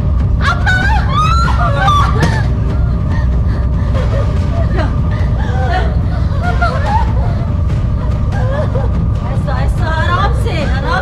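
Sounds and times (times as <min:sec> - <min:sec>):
steady low hum: 0:00.0 - 0:11.0
women wailing and crying: 0:00.4 - 0:09.5.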